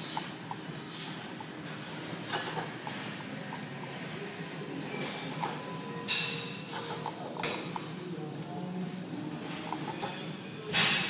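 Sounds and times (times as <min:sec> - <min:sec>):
forceful hissy breaths: 0:00.0 - 0:02.8
gym room noise: 0:00.0 - 0:11.0.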